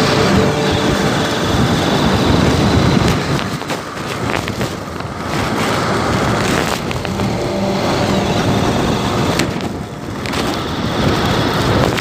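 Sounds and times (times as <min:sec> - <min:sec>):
motorcycle engine running: 0:00.0 - 0:12.0
road noise: 0:00.0 - 0:12.0
wind noise: 0:00.0 - 0:12.0.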